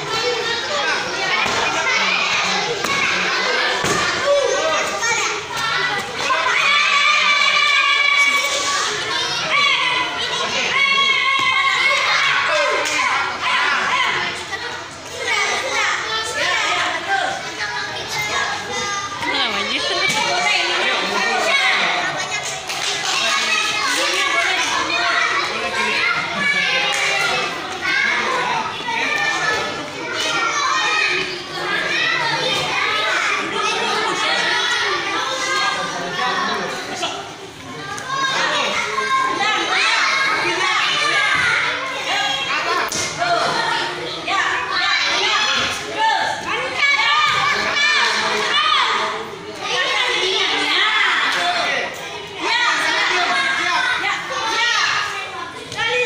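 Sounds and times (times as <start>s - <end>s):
children calling and chattering: 0.0s - 56.0s.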